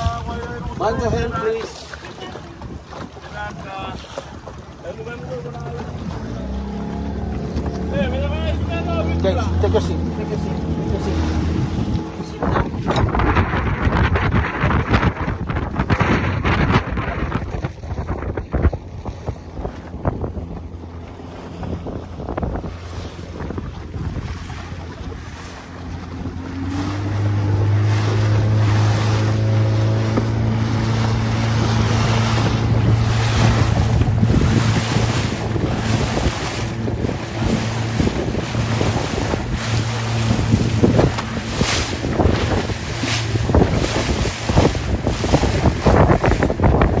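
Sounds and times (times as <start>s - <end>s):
motorboat engine: 0.0s - 47.0s
water splashing against hull: 0.0s - 47.0s
wind buffeting microphone: 0.0s - 47.0s.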